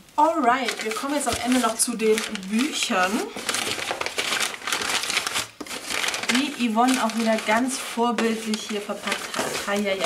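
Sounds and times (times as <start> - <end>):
packaging crinkling and rustling: 0.2 - 10.0.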